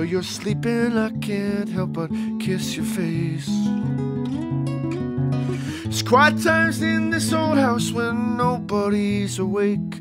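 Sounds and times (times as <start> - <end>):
man singing: 0.0 - 3.9, 5.5 - 10.0
acoustic guitar strumming chords: 0.0 - 10.0.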